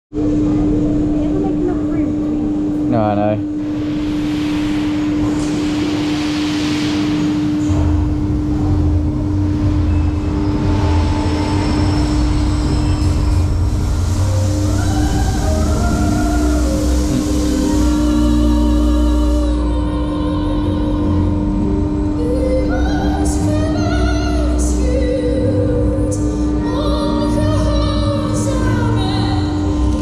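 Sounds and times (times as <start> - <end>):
steady hum: 0.1 - 30.0
roller coaster train rumble: 0.2 - 30.0.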